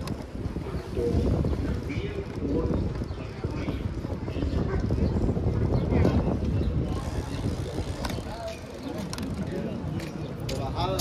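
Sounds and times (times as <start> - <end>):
bicycle tyre noise: 0.0 - 9.6
faint voices: 0.0 - 11.0
wind on microphone: 0.0 - 11.0.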